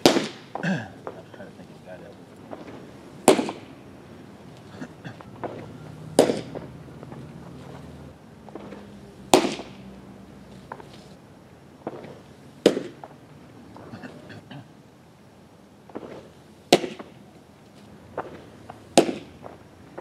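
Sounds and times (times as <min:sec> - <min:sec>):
baseballs popping into mitt: 0:02.5 - 0:03.7, 0:04.6 - 0:07.2, 0:08.5 - 0:09.8, 0:11.9 - 0:13.1, 0:18.2 - 0:20.0.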